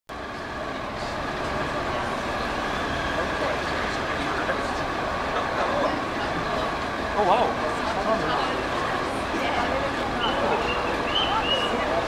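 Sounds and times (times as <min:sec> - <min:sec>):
traffic hum: 0:00.1 - 0:12.0
faint voices: 0:00.2 - 0:12.0.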